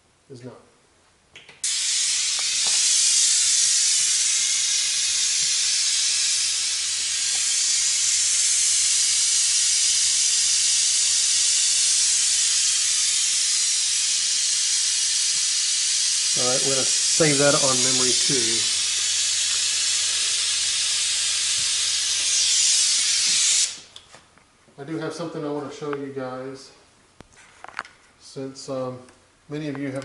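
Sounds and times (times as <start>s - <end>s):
pink noise hiss: 1.6s - 23.9s.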